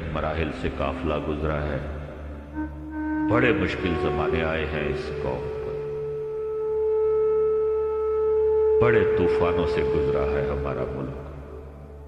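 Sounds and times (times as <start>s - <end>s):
man narrating: 0.0s - 2.0s, 3.2s - 5.9s, 8.8s - 11.3s.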